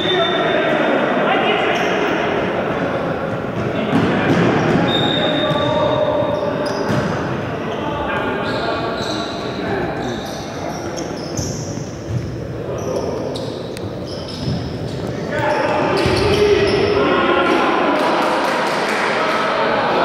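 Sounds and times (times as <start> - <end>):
players shouting in hall: 15.3 - 20.0.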